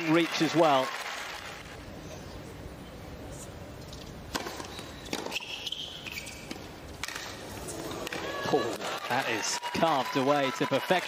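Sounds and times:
low crowd hum: 0:00.0 - 0:11.0
tennis ball bouncing on court: 0:04.3 - 0:05.4.

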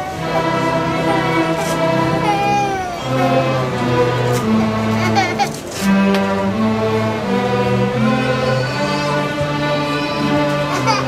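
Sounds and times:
string orchestra playing: 0:00.0 - 0:11.0
child's voice: 0:02.2 - 0:03.4.

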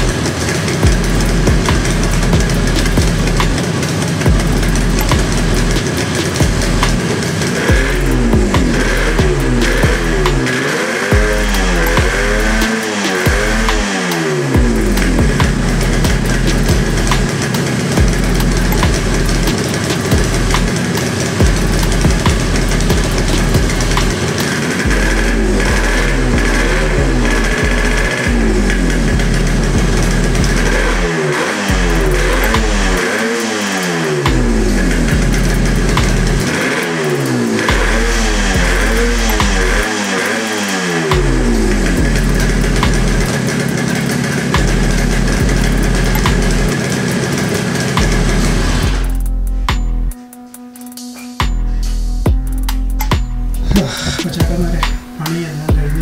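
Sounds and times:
two-stroke engine revving: 0:00.0 - 0:56.0.

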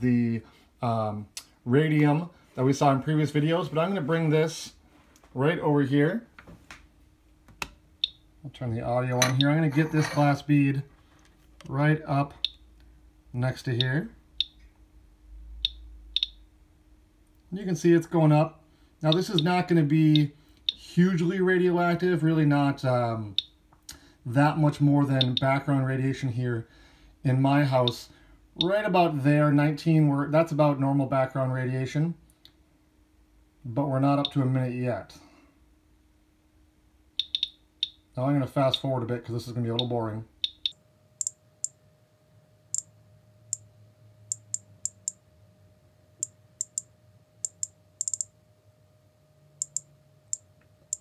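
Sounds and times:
geiger counter clicks: 0:15.6 - 0:16.4, 0:19.1 - 0:20.8, 0:25.2 - 0:25.5, 0:37.2 - 0:38.0, 0:39.8 - 0:41.8, 0:44.3 - 0:45.2, 0:46.2 - 0:48.3, 0:49.6 - 0:51.0.

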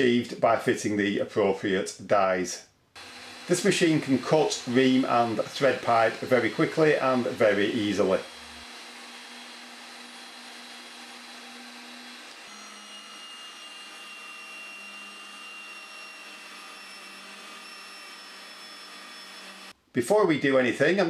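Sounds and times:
electric motor hum and whine: 0:03.0 - 0:19.8.

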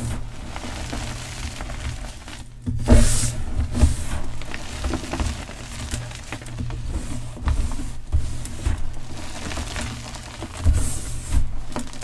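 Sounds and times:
grains pattering down: 0:00.0 - 0:02.6, 0:04.1 - 0:07.3, 0:09.0 - 0:12.0.

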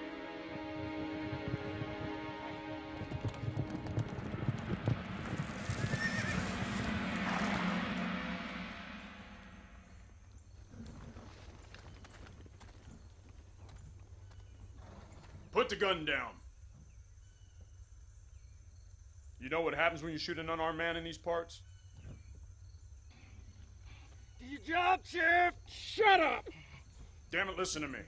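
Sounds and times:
film score music: 0:00.0 - 0:10.4
horses' hoofbeats: 0:00.4 - 0:07.6, 0:10.6 - 0:15.6
horse whinnying: 0:05.6 - 0:06.7
man shouting: 0:24.4 - 0:26.6.

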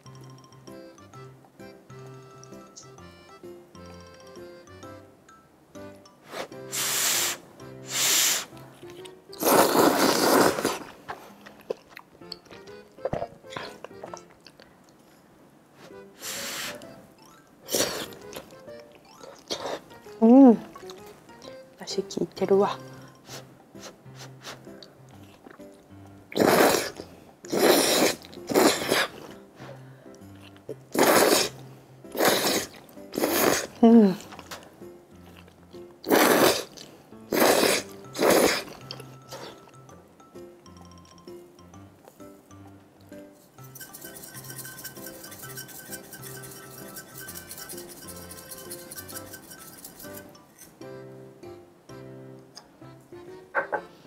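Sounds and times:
light background music: 0:00.0 - 0:54.0
noodles being slurped: 0:09.4 - 0:10.9, 0:26.4 - 0:29.2, 0:30.9 - 0:33.7, 0:36.0 - 0:38.8.

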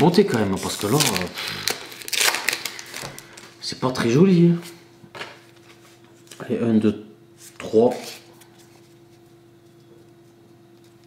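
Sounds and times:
cards rustling in the hand: 0:00.0 - 0:03.6
steady low hum: 0:00.0 - 0:11.0.

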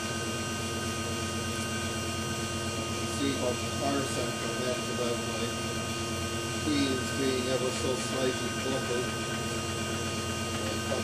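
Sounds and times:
electric motor and gearbox whining: 0:00.0 - 0:11.0.

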